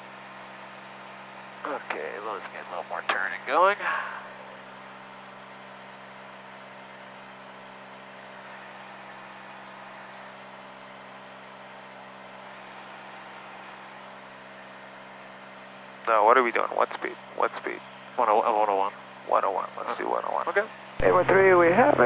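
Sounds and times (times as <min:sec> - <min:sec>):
airplane engine drone in cabin: 0:00.0 - 0:22.0.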